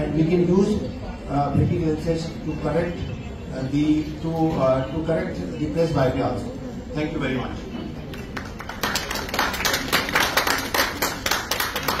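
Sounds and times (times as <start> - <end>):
audience applauding: 8.2 - 12.0.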